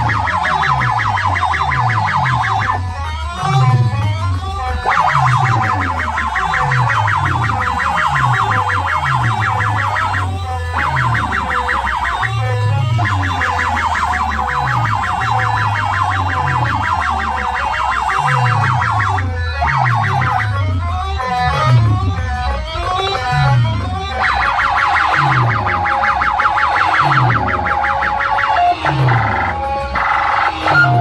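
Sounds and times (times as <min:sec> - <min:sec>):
electronic dance music: 0:00.0 - 0:31.0
pulsing siren-like synth: 0:00.0 - 0:31.0
sliding bass notes: 0:00.0 - 0:31.0.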